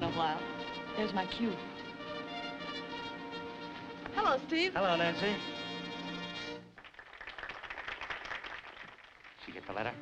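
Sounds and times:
crowd applauding: 0:06.7 - 0:10.0.

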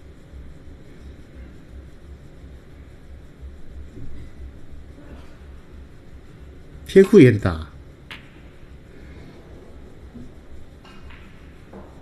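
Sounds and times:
low hall ambience: 0:00.0 - 0:12.0
snooker balls clicking: 0:08.0 - 0:08.7, 0:10.1 - 0:12.0.

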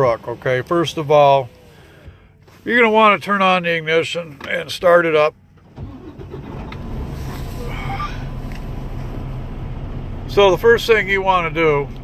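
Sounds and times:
diesel truck engine starting and idling: 0:00.0 - 0:12.0.

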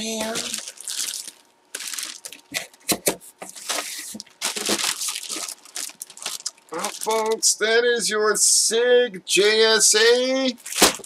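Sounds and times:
plastic bag crinkling: 0:00.0 - 0:02.8, 0:03.5 - 0:07.4, 0:10.0 - 0:11.0.

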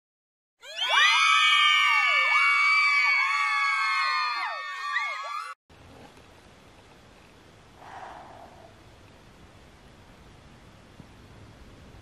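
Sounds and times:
many voices screaming: 0:00.6 - 0:05.6.

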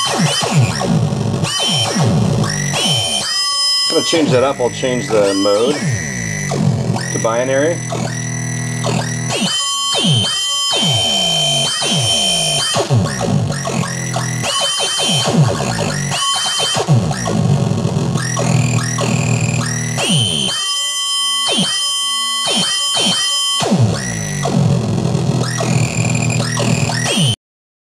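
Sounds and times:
glitchy electronic beat: 0:00.0 - 0:20.8, 0:22.4 - 0:27.3
buzzing tones and noise: 0:00.0 - 0:27.4.

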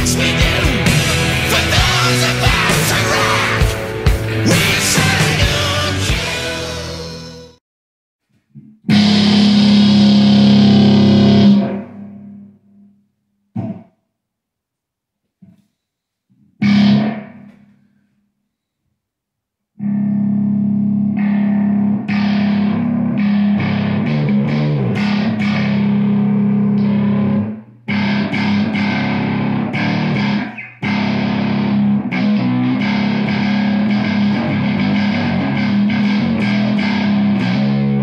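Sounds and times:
distorted electric guitar: 0:00.0 - 0:07.6, 0:08.8 - 0:12.9, 0:13.6 - 0:13.9, 0:16.6 - 0:18.0, 0:19.8 - 0:38.0.

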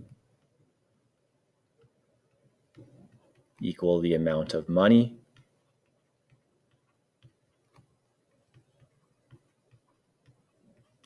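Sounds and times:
stylus tip tapping: 0:05.3 - 0:11.0.

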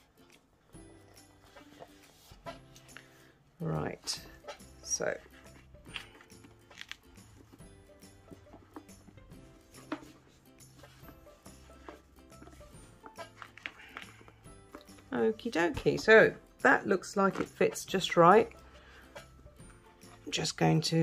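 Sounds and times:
quiet background music: 0:00.0 - 0:21.0
book rustling and knocking: 0:00.8 - 0:03.3, 0:03.9 - 0:16.2, 0:17.1 - 0:20.3.

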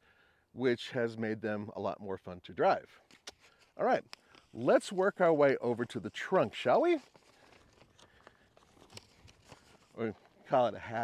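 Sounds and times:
footsteps on gravel: 0:04.5 - 0:11.0.

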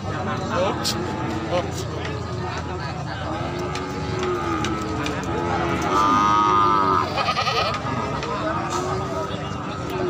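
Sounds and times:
people talking: 0:00.0 - 0:10.0
goat bleating: 0:05.7 - 0:07.8.

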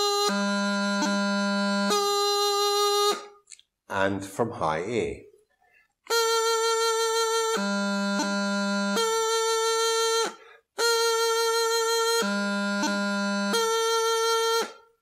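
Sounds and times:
practice chanter playing: 0:00.0 - 0:03.3, 0:06.1 - 0:14.9.

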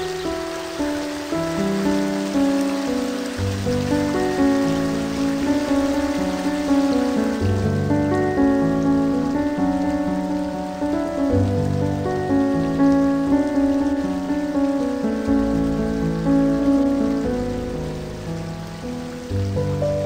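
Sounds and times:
river water cascading over rocks: 0:00.0 - 0:20.0
slow background music: 0:00.0 - 0:20.0.

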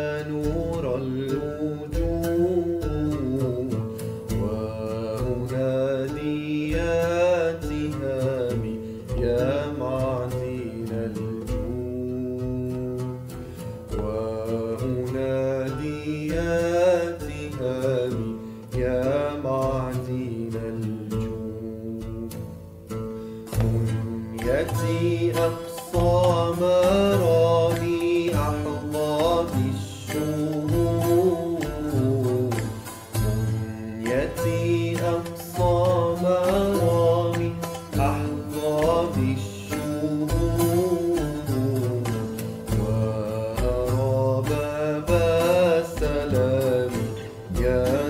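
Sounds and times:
man singing devotional song: 0:00.0 - 0:22.6, 0:23.4 - 0:48.0
instrumental accompaniment: 0:00.0 - 0:48.0
low beat: 0:23.5 - 0:48.0.

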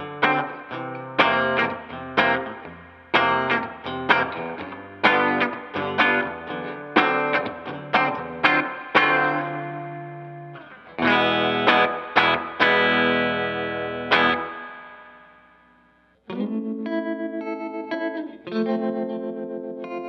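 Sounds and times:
electric guitar chords ringing out: 0:00.0 - 0:20.0
pulsing electric guitar chords: 0:00.0 - 0:20.0.

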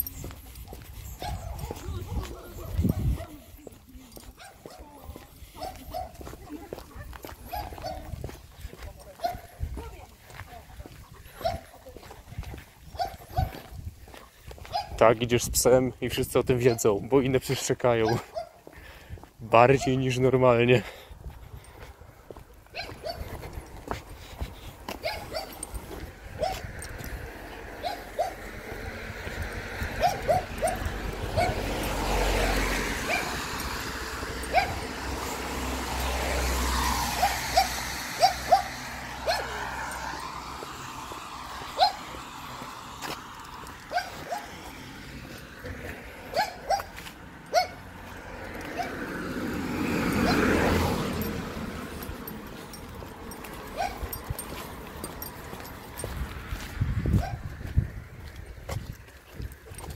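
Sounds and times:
dogs barking: 0:00.0 - 0:06.4, 0:07.0 - 0:09.6, 0:10.8 - 0:11.8, 0:12.8 - 0:15.0, 0:16.6 - 0:17.0, 0:17.9 - 0:18.7, 0:22.6 - 0:23.6, 0:24.7 - 0:55.3, 0:57.2 - 0:57.6
car passing: 0:20.7 - 0:59.9.

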